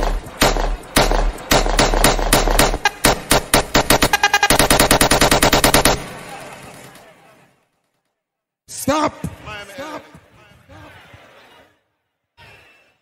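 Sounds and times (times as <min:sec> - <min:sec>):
machine gun sound effect: 0:00.0 - 0:07.0.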